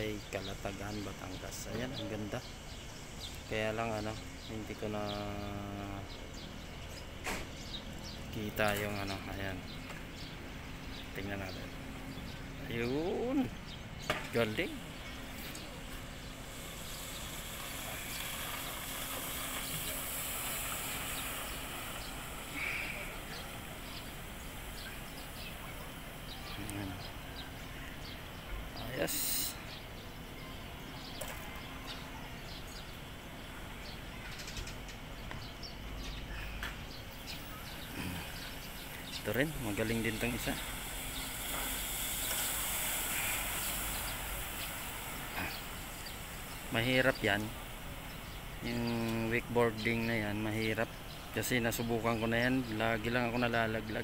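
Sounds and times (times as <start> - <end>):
steady outdoor hiss: 0.0 - 54.0.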